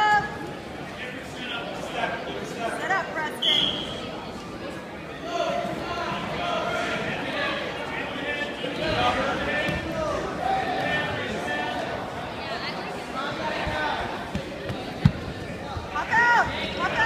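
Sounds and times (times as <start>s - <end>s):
spectators shouting in a gym: 5.1s - 17.0s.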